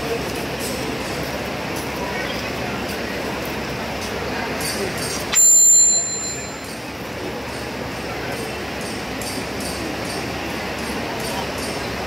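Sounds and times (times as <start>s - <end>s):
small metal bell ringing: 5.3s - 6.9s.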